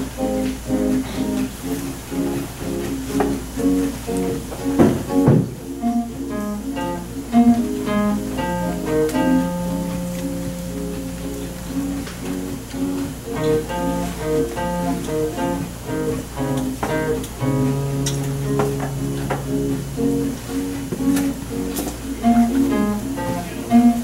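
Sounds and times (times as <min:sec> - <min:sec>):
acoustic guitar duet: 0:00.0 - 0:24.0.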